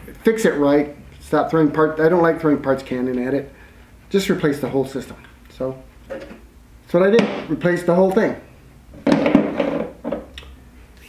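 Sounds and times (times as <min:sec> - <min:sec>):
car parts clattering on table: 0:09.0 - 0:10.3.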